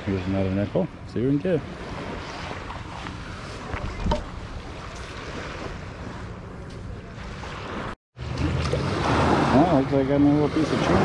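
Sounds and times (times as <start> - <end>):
wind noise on microphone: 1.8 - 6.4.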